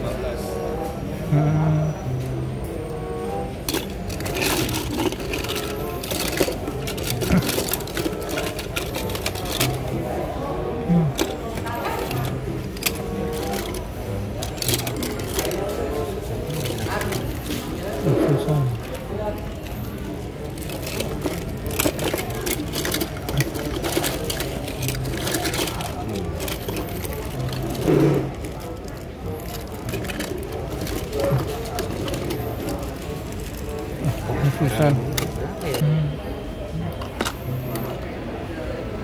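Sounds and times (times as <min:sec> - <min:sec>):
toy cars clattering in a box: 0:03.6 - 0:10.2, 0:11.1 - 0:35.8.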